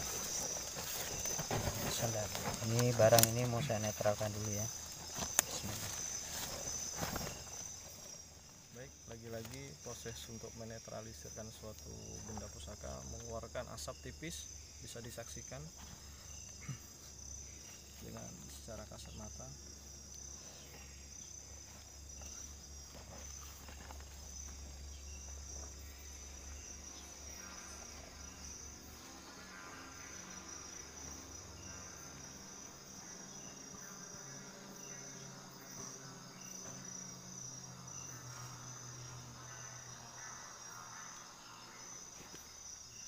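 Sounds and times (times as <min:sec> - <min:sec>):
crickets chirping: 0:00.0 - 0:43.0.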